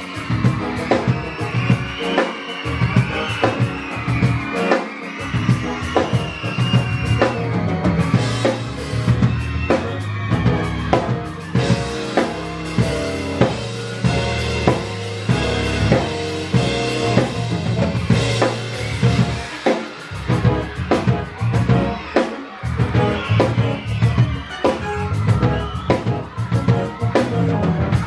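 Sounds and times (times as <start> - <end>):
drum kit beat: 0.0 - 28.0
live band music: 0.0 - 28.0.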